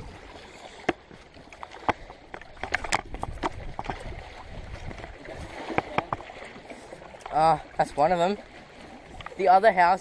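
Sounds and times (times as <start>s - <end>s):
water lapping: 0.0s - 10.0s
wind on microphone: 2.0s - 6.4s.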